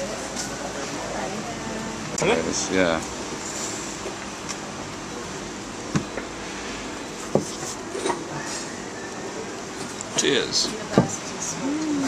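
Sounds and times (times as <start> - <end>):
bar room background noise: 0.0 - 12.0.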